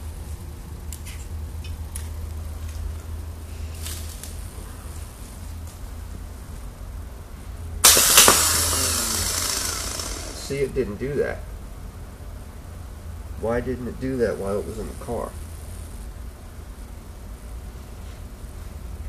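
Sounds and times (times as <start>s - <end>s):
clamps and leads clicking: 7.8s - 10.7s
starter motor whirring: 7.8s - 10.8s.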